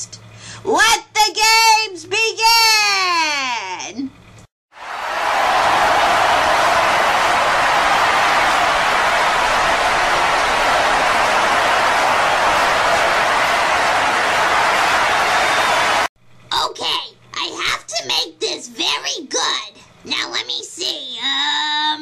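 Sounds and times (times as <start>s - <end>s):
crowd roar: 4.8s - 16.1s.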